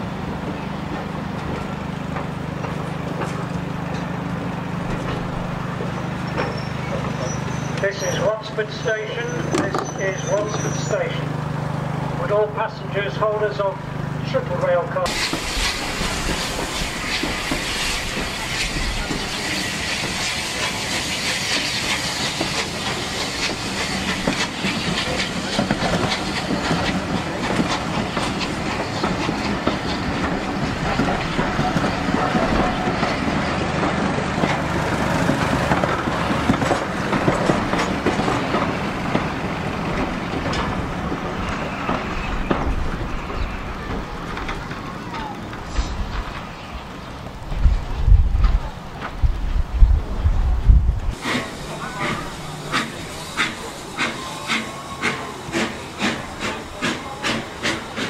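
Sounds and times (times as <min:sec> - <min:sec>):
train wheels rumbling on rails: 0:00.0 - 0:58.0
clatter over rail joints: 0:00.3 - 0:12.4, 0:21.4 - 0:49.6.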